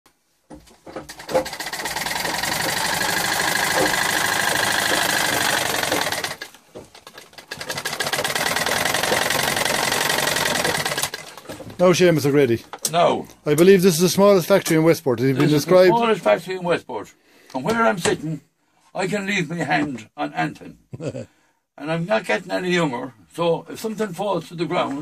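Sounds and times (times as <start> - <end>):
sewing machine stitching: 0.8 - 11.8.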